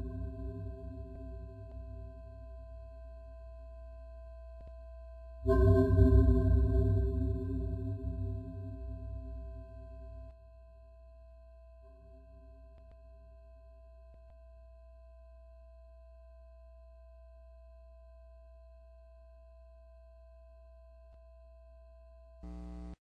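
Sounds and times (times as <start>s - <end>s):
faint steady electronic tone: 0.0s - 5.8s, 6.8s - 23.0s
music: 0.0s - 17.4s
low hum: 5.5s - 10.4s, 22.4s - 23.0s.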